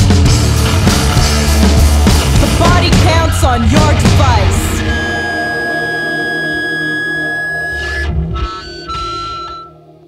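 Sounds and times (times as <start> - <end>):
rock band chord on electric guitars: 0.0 - 9.6
steady high tone: 1.3 - 10.0.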